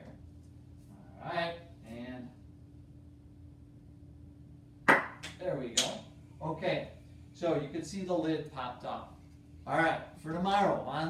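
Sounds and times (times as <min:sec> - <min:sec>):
canister rocket pop: 0:04.9 - 0:05.9.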